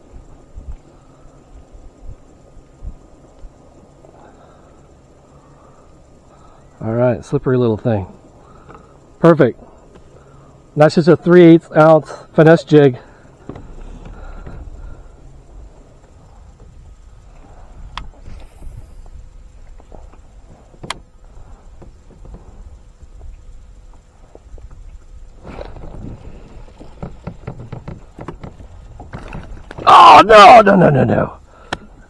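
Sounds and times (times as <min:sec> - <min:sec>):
wind on microphone: 0:24.5 - 0:29.9.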